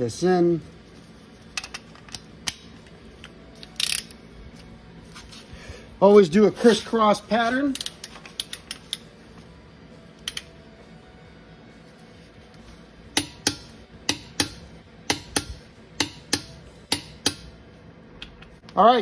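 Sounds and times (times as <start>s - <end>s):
torque wrench clicking: 3.6s - 4.1s, 7.7s - 9.0s, 10.2s - 10.5s.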